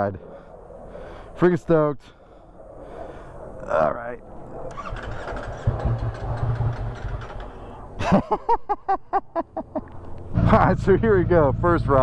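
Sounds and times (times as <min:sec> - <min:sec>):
motorcycle engine starting and idling: 0:04.7 - 0:07.7, 0:10.4 - 0:12.0
man laughing: 0:08.0 - 0:11.3.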